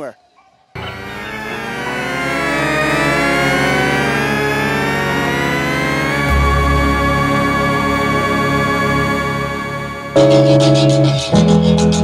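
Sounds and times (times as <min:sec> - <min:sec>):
synthesized gliding tones: 0:00.8 - 0:11.2.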